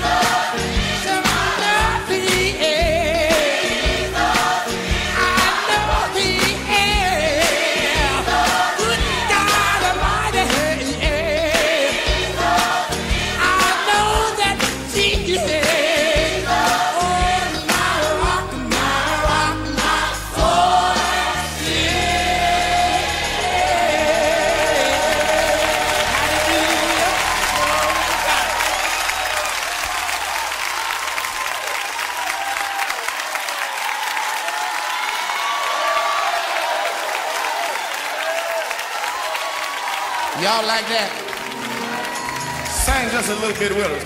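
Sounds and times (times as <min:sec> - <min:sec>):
gospel choir singing with band: 0:00.0 - 0:30.5
congregation applauding and cheering: 0:00.0 - 0:44.0.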